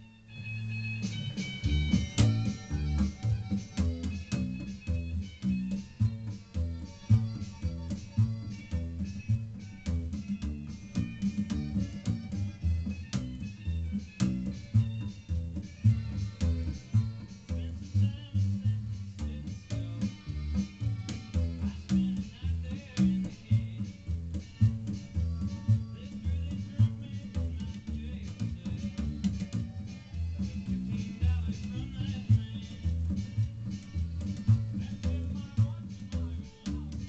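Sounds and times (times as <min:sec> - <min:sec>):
washtub bass plucked: 0:00.3 - 0:37.0.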